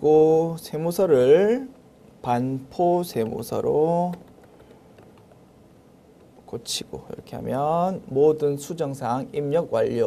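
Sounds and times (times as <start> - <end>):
keyboard keystrokes: 4.1 - 5.4.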